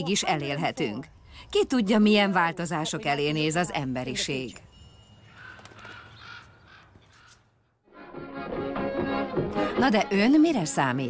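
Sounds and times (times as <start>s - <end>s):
crows cawing faintly: 5.2s - 7.8s.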